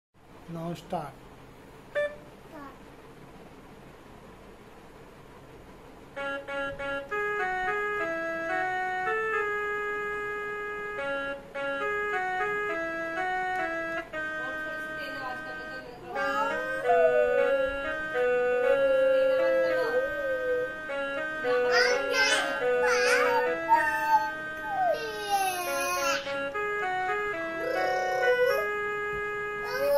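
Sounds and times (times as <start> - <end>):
mini keyboard melody: 1.9 - 2.7, 6.0 - 29.9
child vocalizing: 16.1 - 17.9, 18.6 - 20.8, 21.4 - 26.3, 27.6 - 28.7, 29.6 - 29.9.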